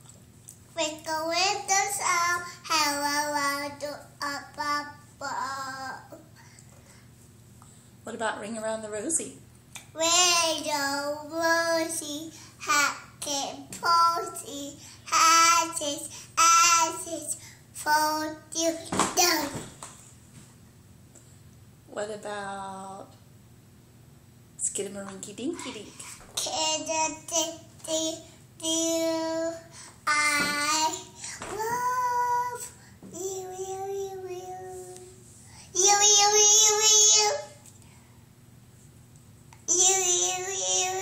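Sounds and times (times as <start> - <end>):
faint room noise: 0.0 - 41.0
child singing long note: 31.5 - 32.6.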